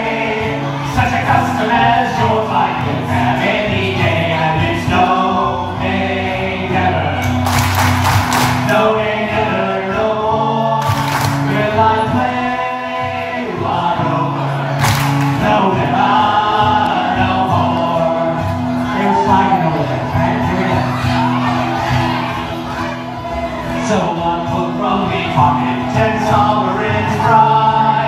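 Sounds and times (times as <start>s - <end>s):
man singing into microphone: 0.0s - 7.5s, 8.5s - 22.3s, 23.3s - 28.0s
acoustic guitar: 0.0s - 28.0s
voices singing along: 0.0s - 28.0s
audience hand claps: 7.2s - 8.8s, 10.8s - 11.6s, 14.8s - 15.4s.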